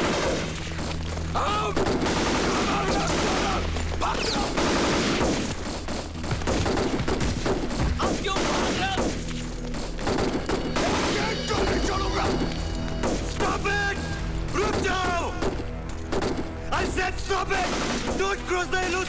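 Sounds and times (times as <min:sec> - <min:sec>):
rapid gunfire: 0:00.0 - 0:01.0, 0:01.6 - 0:13.6, 0:14.5 - 0:19.0.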